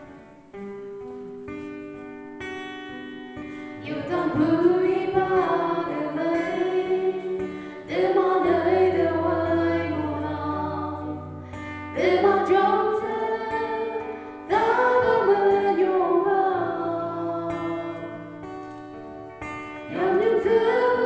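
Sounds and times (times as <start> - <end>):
gospel singing: 3.8 - 18.3, 19.9 - 21.0.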